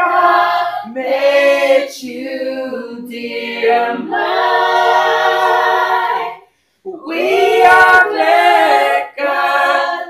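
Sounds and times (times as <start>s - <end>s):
group singing unaccompanied: 0.0s - 10.0s.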